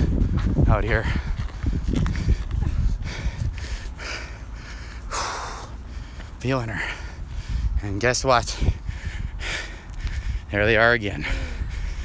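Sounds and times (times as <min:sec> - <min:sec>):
man breathing hard: 0:00.0 - 0:12.0.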